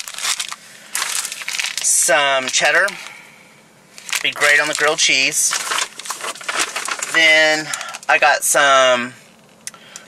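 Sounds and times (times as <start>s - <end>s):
plastic packaging crinkling: 0.0s - 3.1s, 4.0s - 8.2s.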